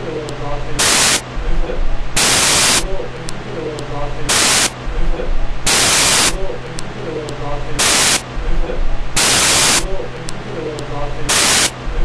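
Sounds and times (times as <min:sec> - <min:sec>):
electrical hum: 0:00.0 - 0:12.0
static hiss bursts: 0:00.6 - 0:03.2, 0:04.1 - 0:06.9, 0:07.6 - 0:10.0, 0:11.2 - 0:12.0.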